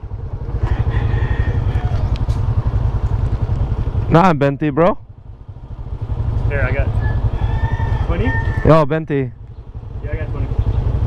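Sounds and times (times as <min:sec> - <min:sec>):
scooter engine idling: 0:00.0 - 0:11.0.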